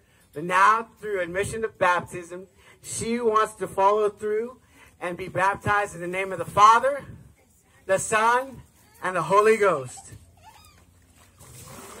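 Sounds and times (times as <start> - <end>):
water splashing in tank: 11.0 - 12.0.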